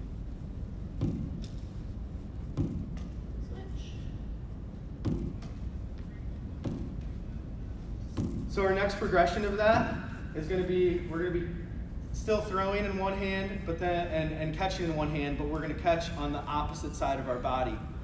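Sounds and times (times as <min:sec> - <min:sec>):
ball thudding off wall: 0:01.0 - 0:01.6, 0:02.5 - 0:03.2, 0:05.0 - 0:05.7, 0:06.6 - 0:07.1, 0:08.1 - 0:08.6.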